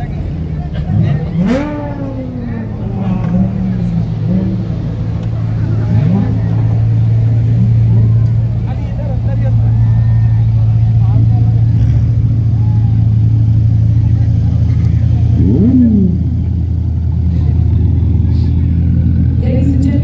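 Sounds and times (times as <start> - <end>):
engine revving: 0.0 - 8.8, 11.0 - 12.4, 13.4 - 20.0
crowd chatter: 0.0 - 20.0
sports car engines passing: 0.0 - 20.0.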